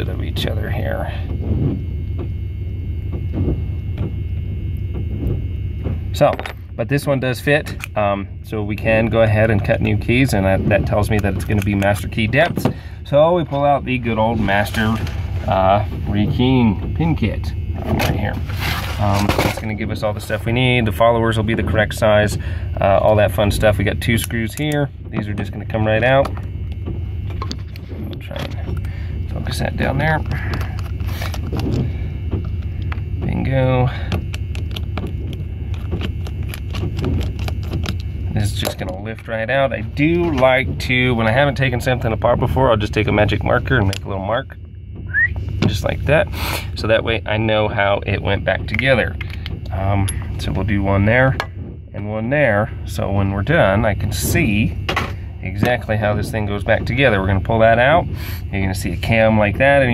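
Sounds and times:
steady low hum: 0.0s - 59.9s
steady low rumble: 0.0s - 59.9s.

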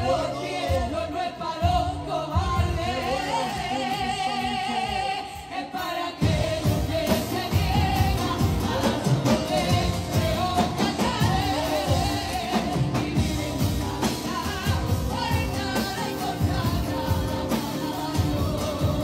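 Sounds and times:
women singing into microphones: 0.0s - 19.0s
acoustic guitar: 6.2s - 19.0s.

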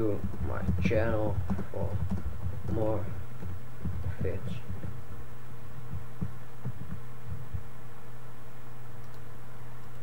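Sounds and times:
soft low thumps: 0.0s - 8.0s
electrical hum: 0.0s - 10.0s.

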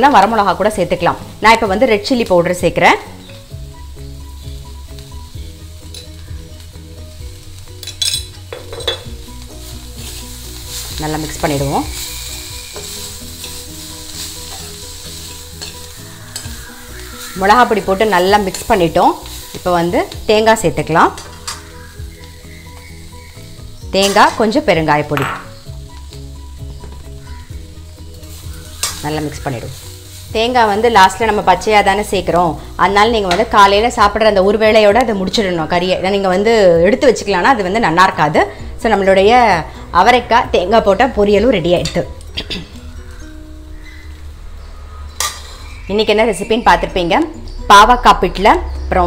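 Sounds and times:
background music with held notes: 0.0s - 49.0s
beans sizzling in oil: 0.0s - 49.0s
metal spatula scraping pan: 11.9s - 19.6s, 28.2s - 30.3s, 45.1s - 45.8s.

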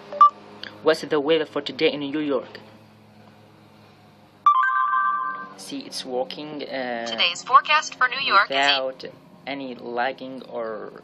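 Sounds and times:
phone electronic chime: 4.5s - 5.6s.

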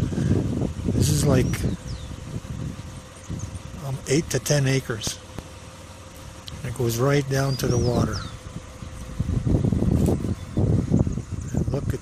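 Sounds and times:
faint steady hum: 0.0s - 12.0s
low rumbling background noise: 0.0s - 12.0s.

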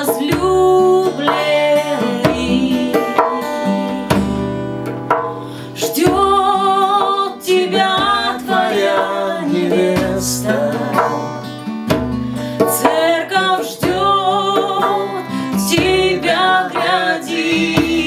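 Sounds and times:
man singing: 0.0s - 3.2s, 5.8s - 11.5s, 12.7s - 18.0s
woman singing: 0.0s - 4.3s, 5.6s - 11.5s, 12.6s - 18.0s
hand drum playing: 0.0s - 18.0s
strummed acoustic guitar: 0.0s - 18.0s.

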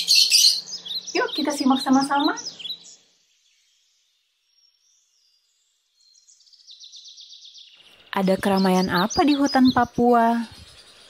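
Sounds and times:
fast high-pitched bird trill: 0.0s - 3.0s, 8.1s - 11.0s
thin high bird chirps: 0.0s - 11.0s.

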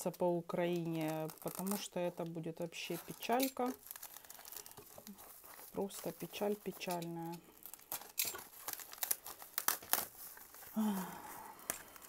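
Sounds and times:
packaging crinkling and crackling: 0.0s - 12.0s.

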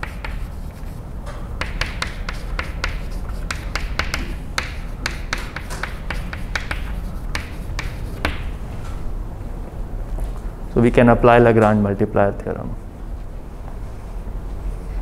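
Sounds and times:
chalk writing on blackboard: 0.0s - 1.0s, 1.6s - 8.6s.

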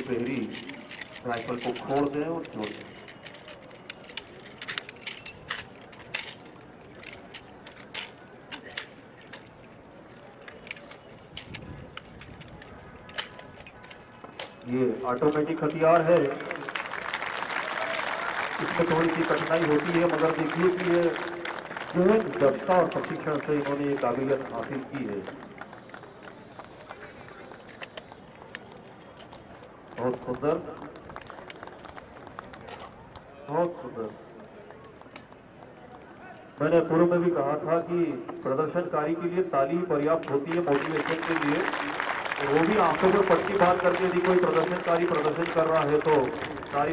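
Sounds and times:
man announcing: 0.0s - 2.9s, 14.6s - 16.8s, 18.6s - 25.4s, 30.0s - 30.8s, 36.2s - 41.8s, 42.4s - 46.9s
metallic clicks of rifles handled: 0.0s - 16.3s, 18.7s - 21.2s, 27.6s - 30.2s, 32.6s - 33.0s.

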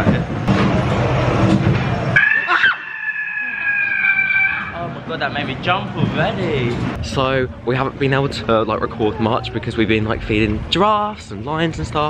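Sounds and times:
short falling cry: 2.2s - 4.8s.

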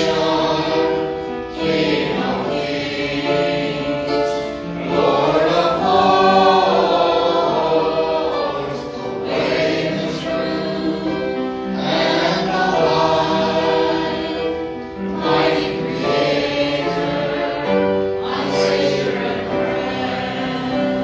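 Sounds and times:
congregation singing a hymn: 0.0s - 21.0s.

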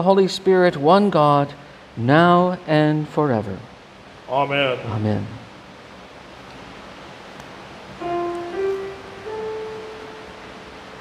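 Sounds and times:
held keyboard note: 8.0s - 11.0s.

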